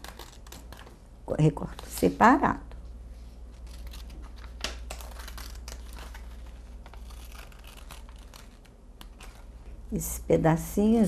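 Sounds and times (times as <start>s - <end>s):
paper rustling and crinkling: 3.2s - 9.6s
scissors snipping: 3.7s - 6.3s.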